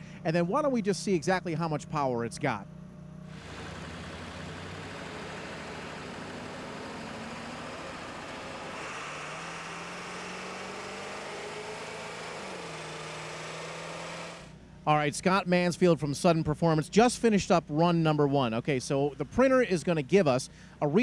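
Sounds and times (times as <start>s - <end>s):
diesel truck engine running: 2.8s - 14.7s.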